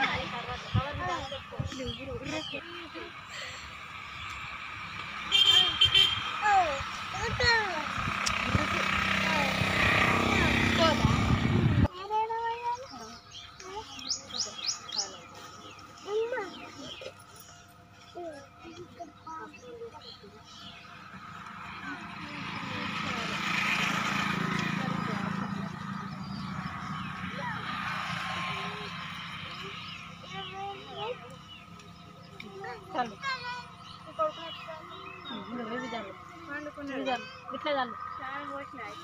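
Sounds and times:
vehicle engine approaching: 0:00.0 - 0:39.0
women talking and calling out: 0:00.0 - 0:39.0.

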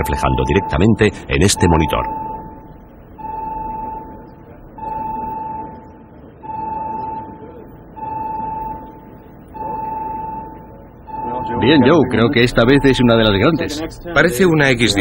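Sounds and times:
electronic alarm beeping: 0:00.0 - 0:15.0
low steady background noise: 0:00.0 - 0:15.0.

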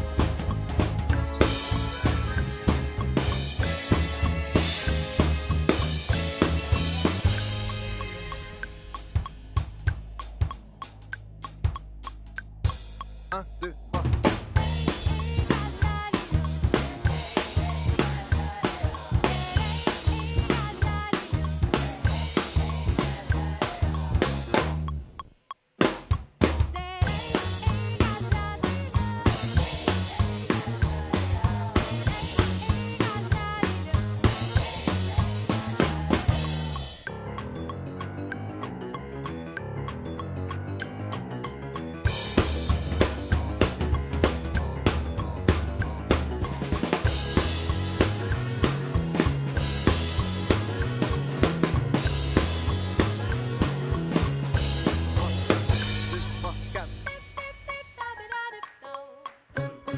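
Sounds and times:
drum kit groove: 0:00.0 - 0:37.5, 0:41.8 - 0:58.0
backing track: 0:00.0 - 0:58.8.

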